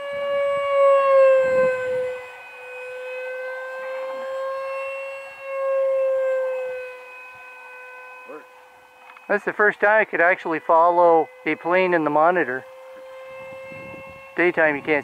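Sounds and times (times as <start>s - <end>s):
model jet fan whining: 0.0s - 15.0s.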